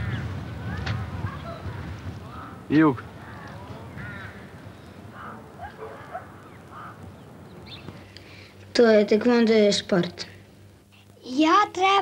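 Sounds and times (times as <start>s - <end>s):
faint bird calls: 0.0s - 8.5s
steady background hum: 0.0s - 12.0s.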